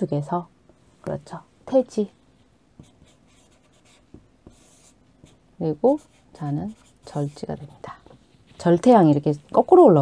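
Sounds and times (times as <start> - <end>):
chalk scratching on chalkboard: 2.8 - 7.9.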